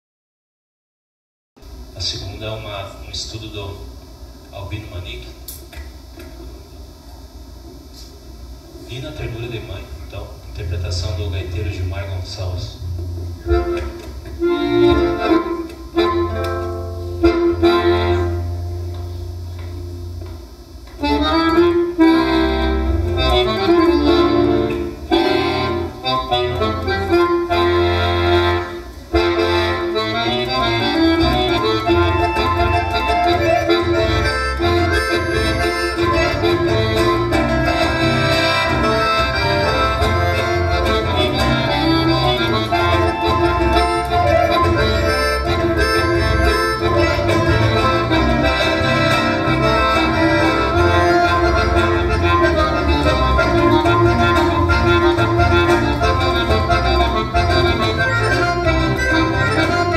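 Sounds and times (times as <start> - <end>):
guitar accompaniment: 10.6 - 59.9
piano accordion playing: 12.8 - 59.9.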